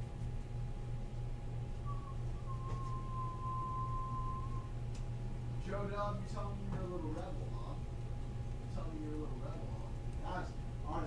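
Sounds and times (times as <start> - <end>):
low hum: 0.0 - 11.0
high-pitched single tone: 1.9 - 4.7.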